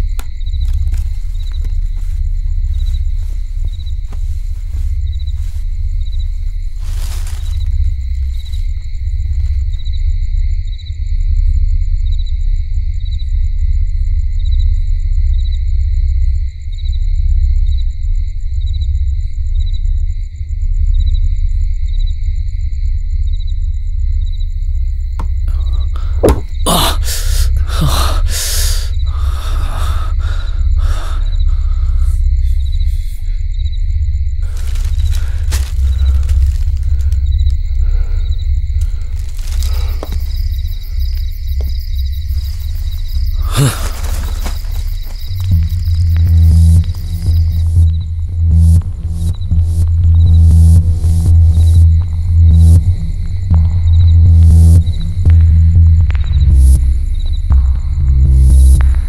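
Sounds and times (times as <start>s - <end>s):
low rumbling drone: 28.9s - 59.0s.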